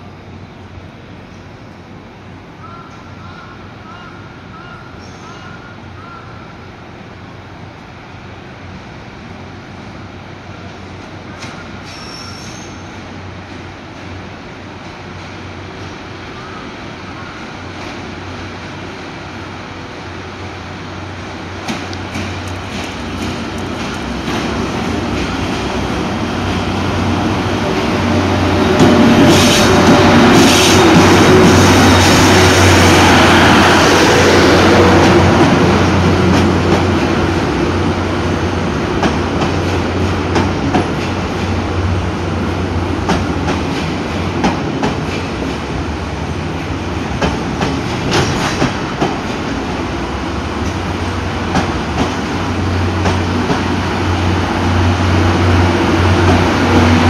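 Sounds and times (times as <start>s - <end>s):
electric locomotive passing: 0.0s - 57.0s.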